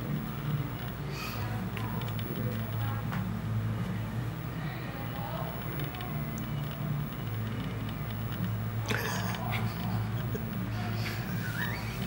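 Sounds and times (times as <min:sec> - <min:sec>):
faint indistinct voices: 0:00.0 - 0:12.0
steady low hum: 0:00.0 - 0:12.0.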